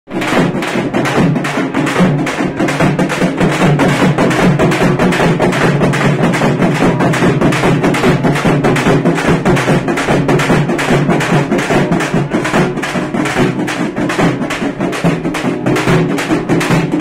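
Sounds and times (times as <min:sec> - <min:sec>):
large barrel drums beaten: 0:00.1 - 0:17.0.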